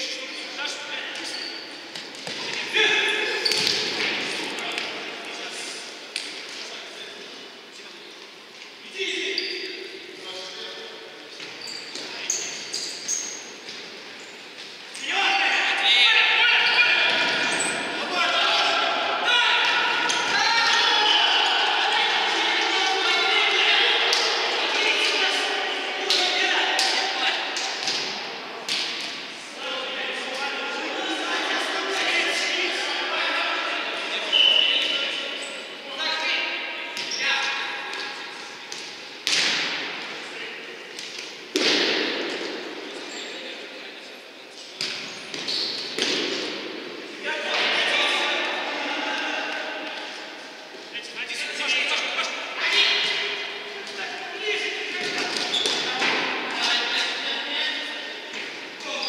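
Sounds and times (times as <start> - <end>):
players shouting: 14.9 - 37.9, 46.1 - 50.2.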